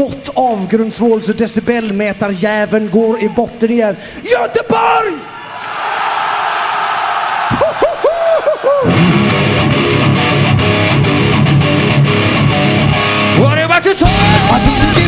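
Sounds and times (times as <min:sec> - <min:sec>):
crowd noise: 0:04.7 - 0:10.0
electric guitar pitch bends: 0:08.8 - 0:15.0
rock band playing: 0:08.8 - 0:15.0.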